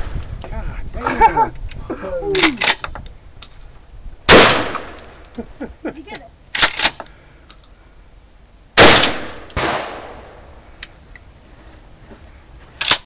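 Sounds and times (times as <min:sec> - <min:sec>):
shotgun shot ringing out: 0:04.3 - 0:05.1, 0:08.8 - 0:10.3.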